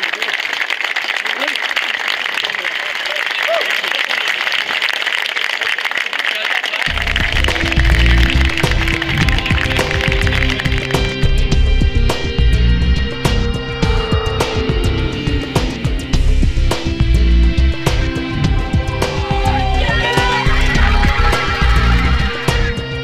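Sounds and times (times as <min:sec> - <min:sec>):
crowd applauding: 0:00.0 - 0:11.4, 0:17.9 - 0:22.8
loud music with heavy bass: 0:06.9 - 0:23.0.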